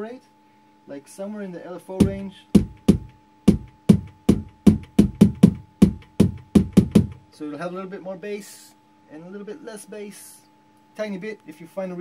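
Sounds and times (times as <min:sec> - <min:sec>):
synthesized kick drum hits: 0:02.0 - 0:07.3.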